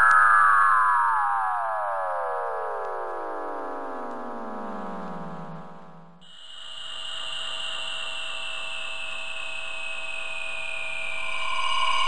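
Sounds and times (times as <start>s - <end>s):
electronic tone gliding down: 0.0s - 6.2s, 10.6s - 12.0s.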